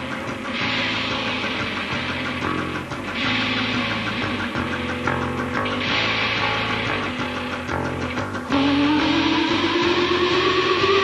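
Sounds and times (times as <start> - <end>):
distorted electric guitar chords: 0.0 - 11.0.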